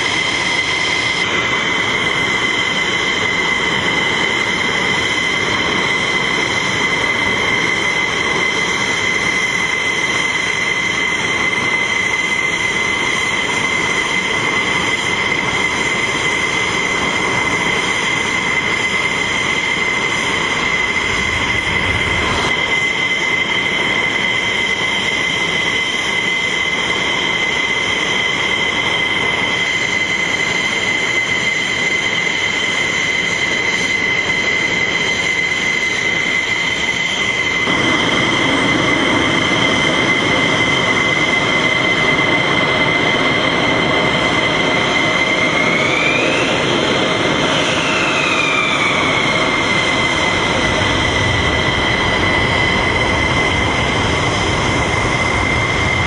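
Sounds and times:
jet engine whine: 0.0s - 56.0s
rushing jet noise: 0.0s - 56.0s.

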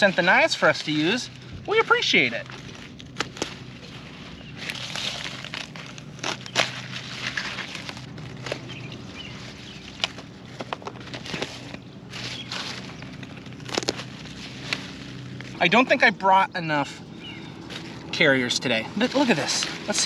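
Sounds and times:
leaves rustling and crunching: 0.0s - 16.0s, 17.2s - 20.0s.

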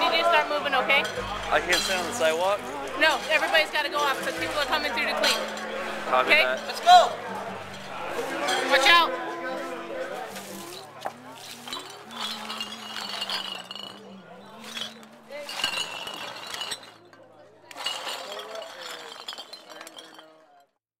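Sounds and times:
glass bottles clinking swept: 0.0s - 20.6s.

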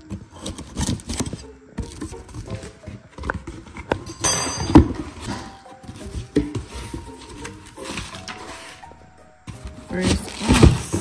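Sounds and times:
cardboard box handling: 0.0s - 4.0s, 4.7s - 11.0s
background music with held notes: 0.0s - 11.0s
plastic air-pillow packing rustling: 9.5s - 11.0s.

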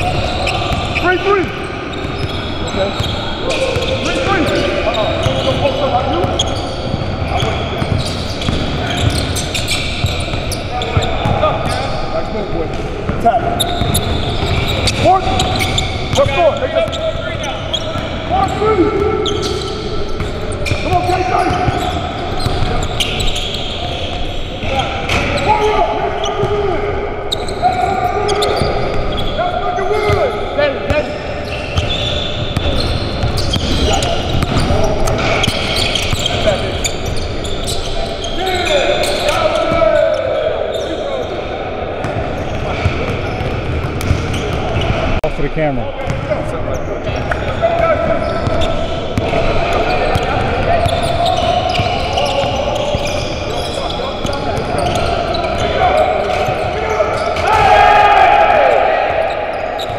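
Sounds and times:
players calling out: 0.0s - 59.9s
basketballs bouncing on wooden floor: 6.2s - 11.8s, 31.8s - 36.6s, 42.0s - 45.1s.

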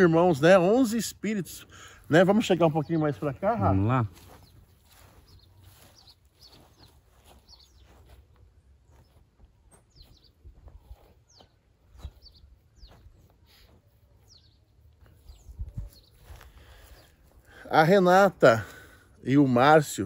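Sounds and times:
birds chirping faintly: 0.0s - 20.0s.

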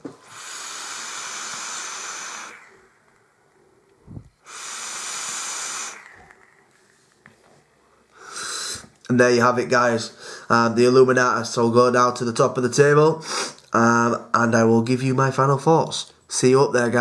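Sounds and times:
breathy vaping hiss: 0.0s - 9.0s, 13.2s - 13.7s.

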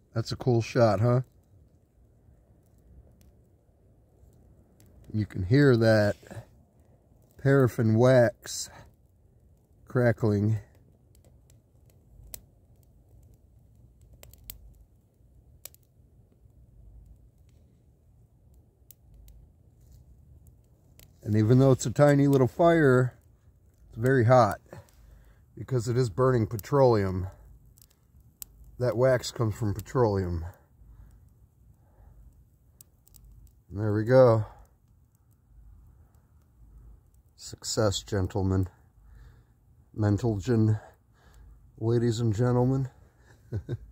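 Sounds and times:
fire popping: 0.0s - 43.9s
small fire crackling: 0.0s - 43.9s.

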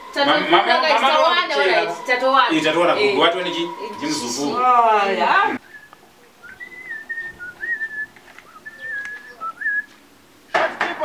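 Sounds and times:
person whistling a tune: 5.6s - 9.9s.

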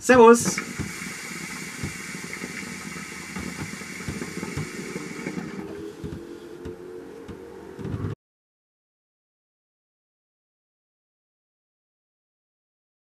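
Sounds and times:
rushing hiss of drawn smoke: 0.4s - 6.1s
water pipe bubbling: 0.5s - 7.9s.

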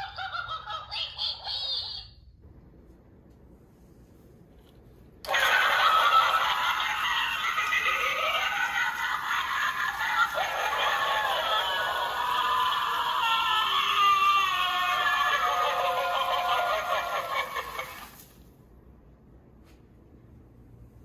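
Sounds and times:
tinny sound track from small speaker: 0.0s - 2.4s.

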